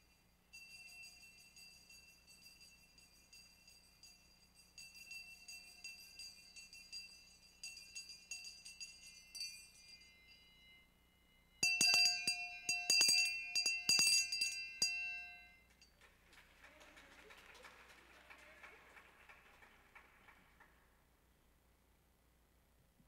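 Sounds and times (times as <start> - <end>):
hand bell ringing: 0.0 - 16.0.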